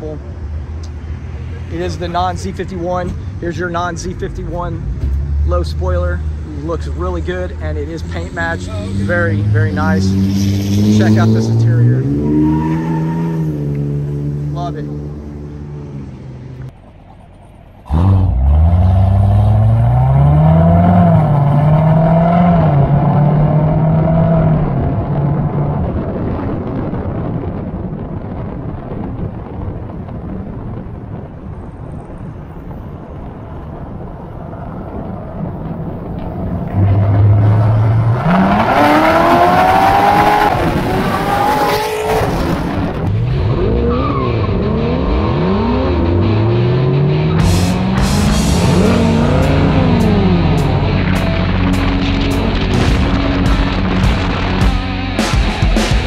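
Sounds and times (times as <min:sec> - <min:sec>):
car engines accelerating: 0:00.0 - 0:29.7, 0:31.4 - 0:56.0.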